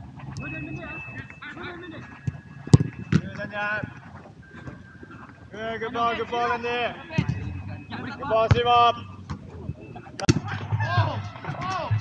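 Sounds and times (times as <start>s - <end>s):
football kicked thump: 8.4s - 9.5s, 10.2s - 10.7s.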